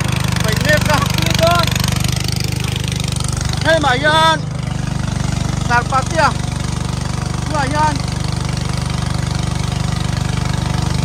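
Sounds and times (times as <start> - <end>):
boat motor running: 0.0 - 11.0.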